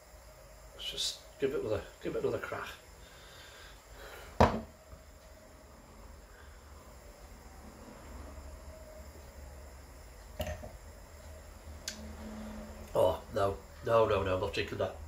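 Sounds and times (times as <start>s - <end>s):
sharp knock: 4.4s - 4.7s.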